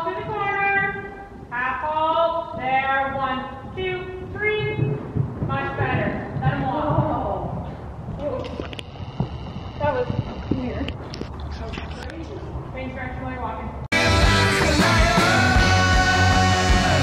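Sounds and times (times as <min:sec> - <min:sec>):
horse hoofbeats on sand: 0:02.4 - 0:11.1
indistinct voices: 0:13.9 - 0:17.0.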